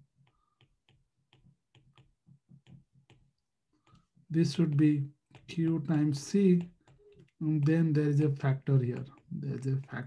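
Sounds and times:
stylus tapping on tablet screen: 0:00.0 - 0:10.0.

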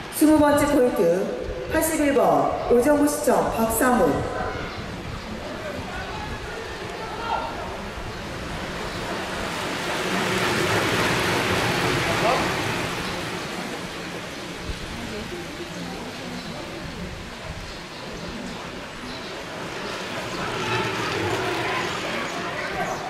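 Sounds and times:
faint voices: 0:01.0 - 0:10.6, 0:11.2 - 0:23.0.

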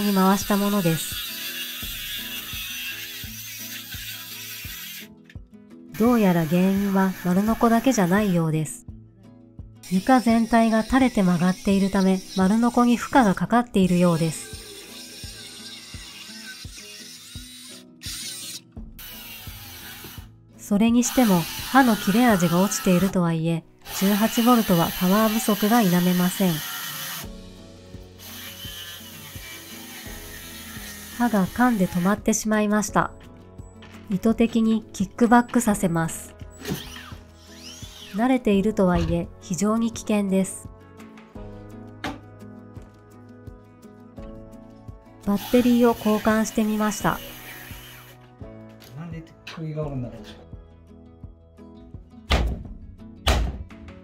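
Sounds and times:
circular saw cutting: 0:00.0 - 0:05.1, 0:06.0 - 0:08.5, 0:09.8 - 0:20.3, 0:21.0 - 0:23.2, 0:23.8 - 0:27.3, 0:28.2 - 0:32.2, 0:36.5 - 0:38.2, 0:45.4 - 0:48.2
background music with beat: 0:40.7 - 0:45.2.

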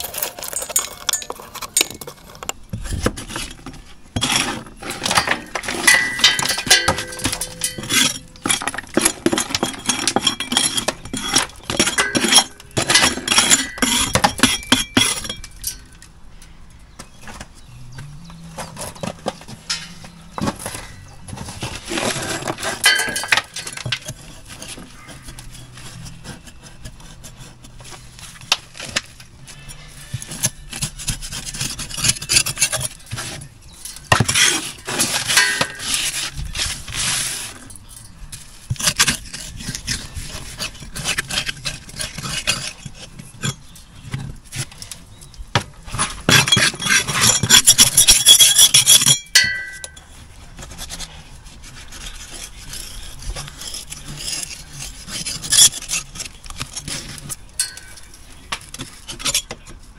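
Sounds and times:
falling bits clinking: 0:00.0 - 0:03.6, 0:04.2 - 0:16.0, 0:21.6 - 0:24.8, 0:33.8 - 0:36.7, 0:45.9 - 0:50.1, 0:57.6 - 0:58.2
trowel scraping brickwork: 0:00.0 - 0:16.1, 0:17.0 - 0:59.9.

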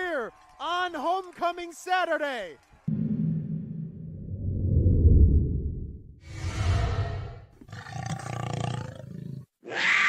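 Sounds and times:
big cat roaring: 0:06.4 - 0:10.0.

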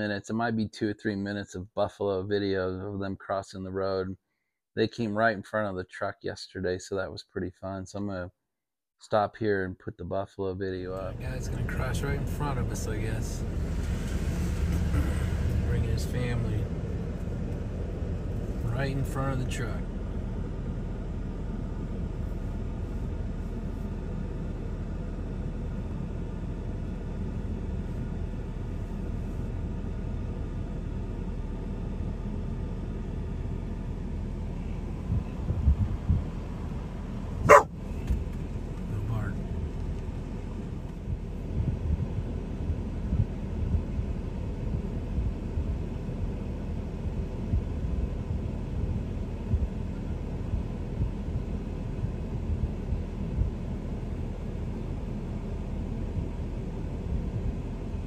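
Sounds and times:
vehicle idling: 0:10.8 - 0:58.0
low thumps: 0:34.9 - 0:38.4.

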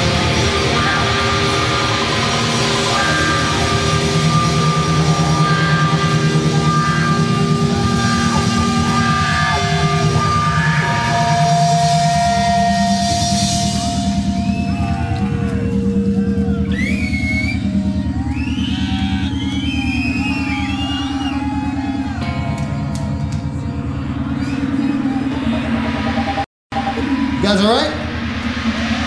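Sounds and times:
sliding warbling high tones: 0:00.0 - 0:22.4
rock band droning: 0:00.0 - 0:29.0.

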